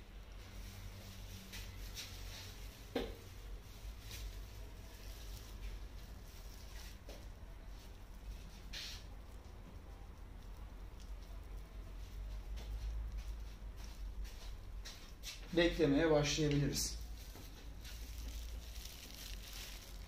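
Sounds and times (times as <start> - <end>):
plastic gloves rustling: 0.0 - 20.0
brush strokes through hair: 0.4 - 9.1.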